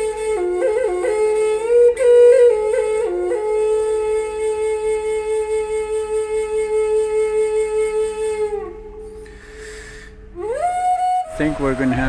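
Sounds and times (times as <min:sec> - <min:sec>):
flute held notes: 0:00.0 - 0:12.0.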